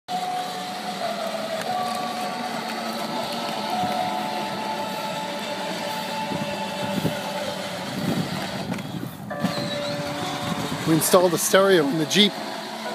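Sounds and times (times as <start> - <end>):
music playing: 0.1 - 8.6
toy car electric motors running: 0.1 - 12.9.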